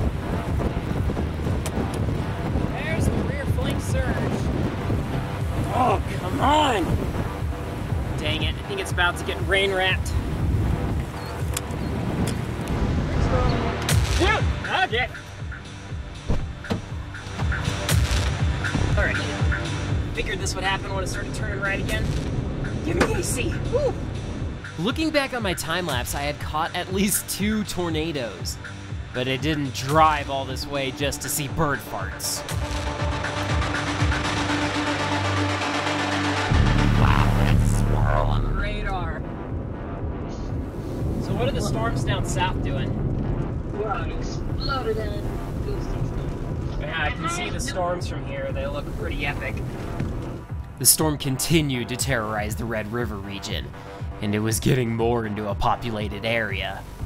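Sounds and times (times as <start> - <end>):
gusty wind buffeting microphone: 0.0 - 13.8, 39.1 - 50.8
electronic music with deep bass: 0.0 - 57.0
person speaking over music: 8.1 - 10.3, 18.8 - 22.2, 24.8 - 28.6, 29.2 - 32.6, 36.5 - 39.2, 50.8 - 56.9.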